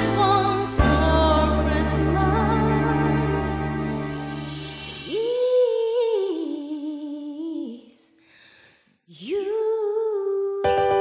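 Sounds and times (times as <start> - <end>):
faint breath: 8.1 - 9.1.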